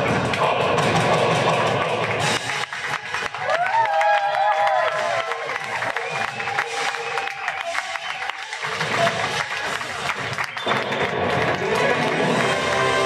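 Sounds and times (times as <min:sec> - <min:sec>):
music: 0:00.0 - 0:13.0
audience applauding and cheering: 0:01.4 - 0:13.0.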